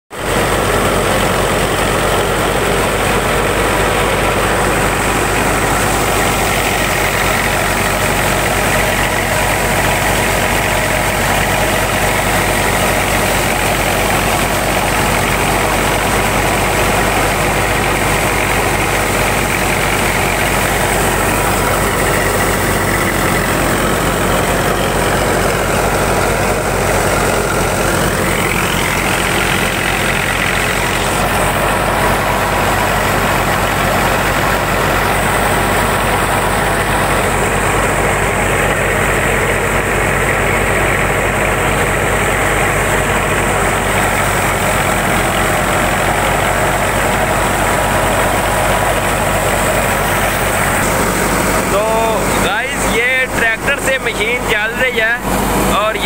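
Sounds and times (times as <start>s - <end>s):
tractor engine: 0.1s - 56.0s
wheat thresher running: 0.1s - 56.0s.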